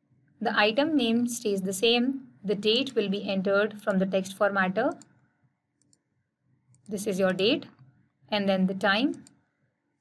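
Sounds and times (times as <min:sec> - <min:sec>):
computer mouse click: 0:04.9 - 0:05.2, 0:05.8 - 0:06.1, 0:09.1 - 0:09.4.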